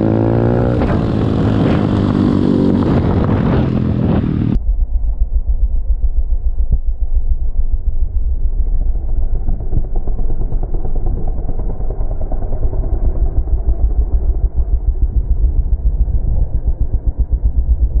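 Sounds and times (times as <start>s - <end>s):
muffled motorbike engine rumble: 0.0s - 18.0s.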